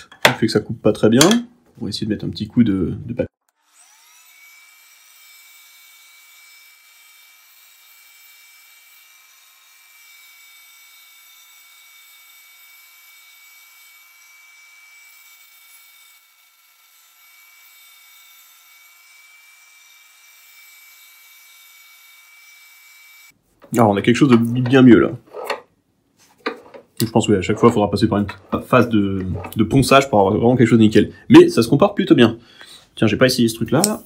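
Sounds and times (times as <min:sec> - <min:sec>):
wood lathe motor whine: 0:03.5 - 0:23.3.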